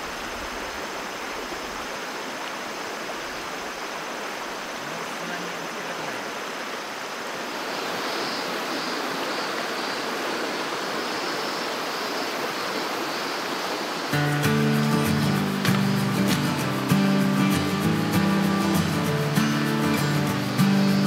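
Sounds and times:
river flowing over rocks: 0.0s - 21.0s
background music with a beat: 14.2s - 21.0s.

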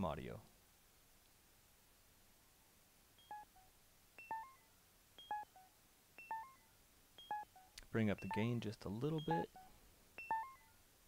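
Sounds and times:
bright synth blips: 3.2s - 10.8s.

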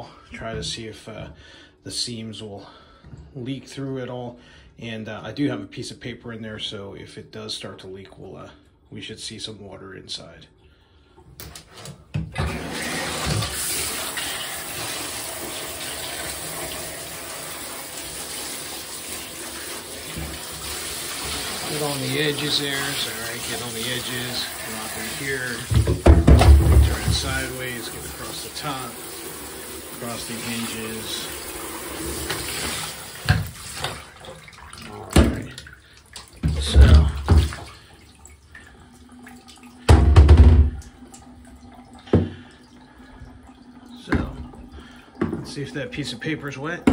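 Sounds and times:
shower head spraying water: 12.6s - 34.0s
loud thump: 39.9s - 40.8s.

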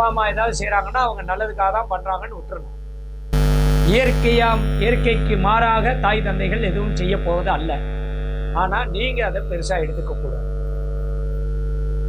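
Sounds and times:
man speaking: 0.0s - 2.7s, 3.8s - 7.8s, 8.6s - 10.4s
electrical mains hum: 0.0s - 12.0s.

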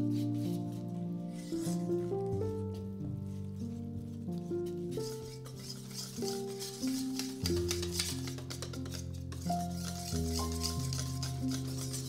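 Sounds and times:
slow background music: 0.0s - 12.0s
whisk beating batter in metal bowl: 4.9s - 12.0s.

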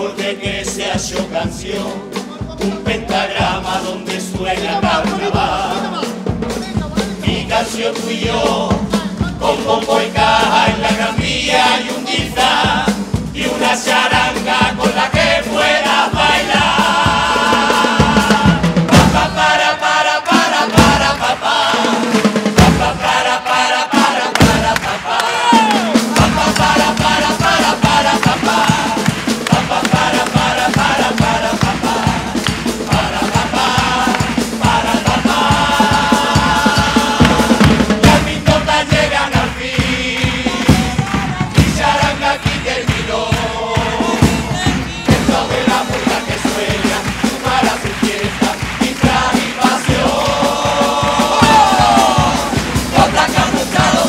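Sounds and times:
brass band playing upbeat tune: 0.0s - 54.0s
group of voices singing: 0.0s - 54.0s.

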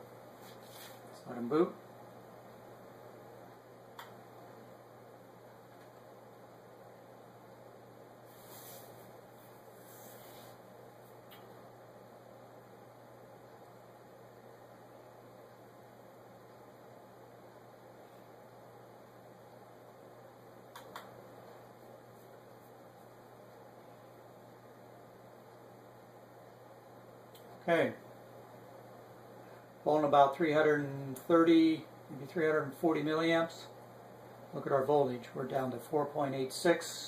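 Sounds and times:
faint hiss: 8.1s - 11.5s.

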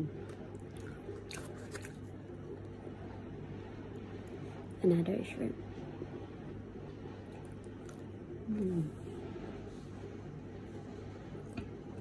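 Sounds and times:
woman humming mmm: 8.5s - 9.0s.

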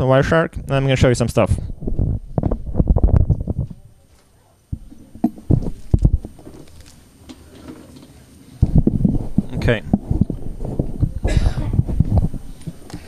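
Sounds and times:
microphone handling thumps: 1.5s - 4.0s, 4.7s - 6.8s, 8.6s - 13.0s.

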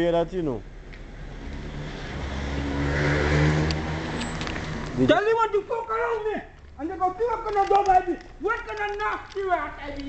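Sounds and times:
car driving by: 1.1s - 5.4s.

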